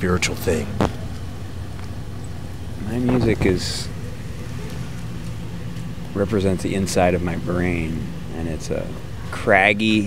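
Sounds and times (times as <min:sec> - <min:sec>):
low hum: 0:00.0 - 0:10.0.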